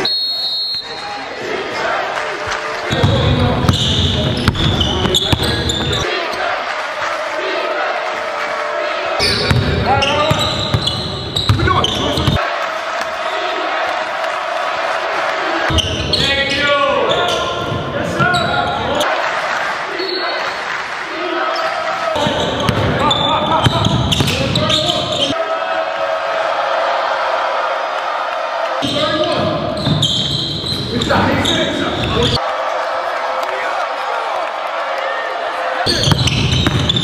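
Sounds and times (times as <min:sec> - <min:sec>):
voices in a large gym: 0:00.3 - 0:27.8, 0:28.7 - 0:34.0
basketball bouncing on court: 0:02.9 - 0:06.0, 0:09.3 - 0:12.4, 0:22.2 - 0:25.1, 0:29.8 - 0:32.4, 0:35.9 - 0:37.0.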